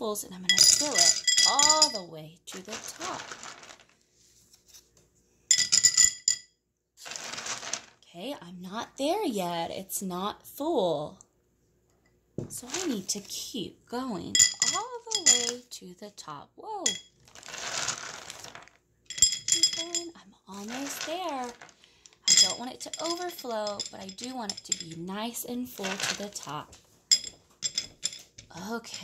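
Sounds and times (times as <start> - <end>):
glass ringing: 0.5 - 2.1, 14.4 - 15.6, 19.1 - 20.1
plastic counting bears rattling: 2.6 - 3.9, 16.9 - 25.0, 25.7 - 28.3
plastic pieces clattering in glass: 2.6 - 3.9, 7.0 - 8.0, 16.9 - 25.0, 25.7 - 29.0
plastic bag rustling: 2.6 - 4.5, 7.0 - 8.0, 17.2 - 18.8, 20.5 - 21.8.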